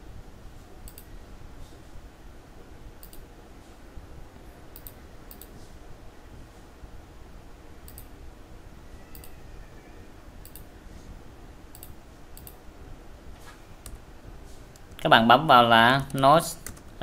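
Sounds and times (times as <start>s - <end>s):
low steady hum: 0.0s - 17.0s
computer mouse clicks: 0.8s - 1.1s, 3.0s - 3.2s, 4.7s - 5.6s, 7.9s - 8.1s, 9.1s - 9.4s, 10.4s - 10.7s, 11.7s - 12.6s.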